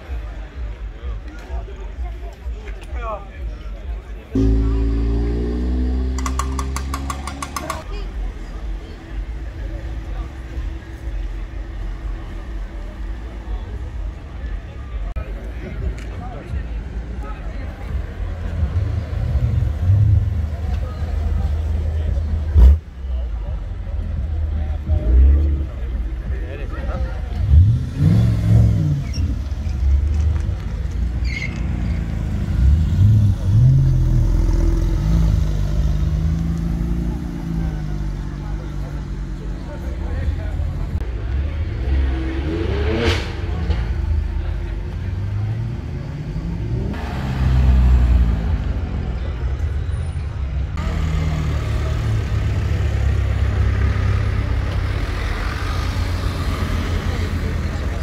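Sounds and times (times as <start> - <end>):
spectators' voices: 0.0 - 58.0
car engines revving: 3.3 - 58.0.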